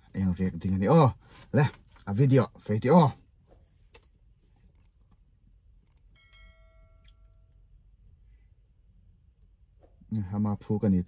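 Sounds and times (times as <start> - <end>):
soft mouse clicks: 5.8 - 6.1
bell ding: 6.1 - 7.6.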